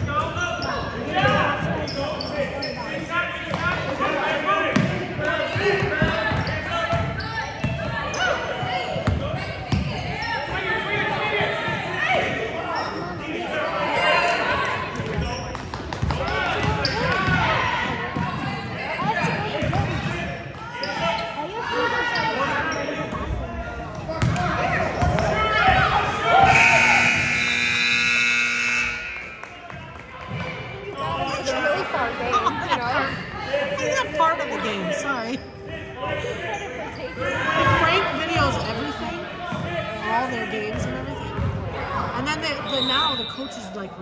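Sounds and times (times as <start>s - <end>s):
voices echoing in gym: 0.0s - 44.0s
scoreboard buzzer: 26.4s - 29.4s.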